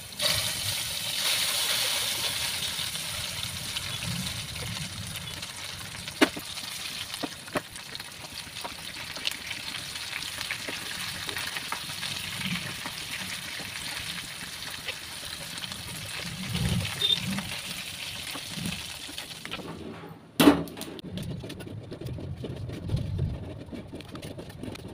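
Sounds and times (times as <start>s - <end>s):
food sizzling in hot oil: 0.0s - 19.5s.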